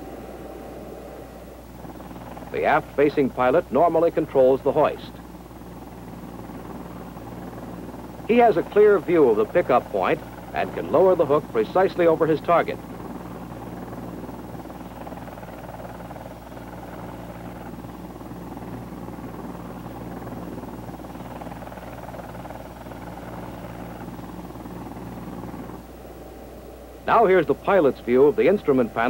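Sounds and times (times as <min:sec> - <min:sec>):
helicopter hovering: 0:00.0 - 0:29.0.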